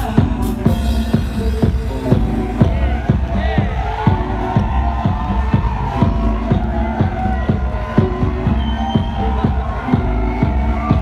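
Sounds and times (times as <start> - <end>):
house music: 0.0 - 11.0.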